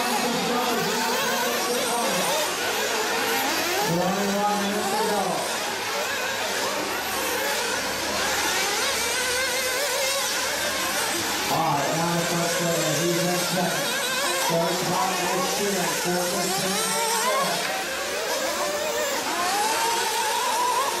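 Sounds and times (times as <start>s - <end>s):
small engines buzzing and revving: 0.0s - 21.0s
person talking: 11.5s - 17.6s.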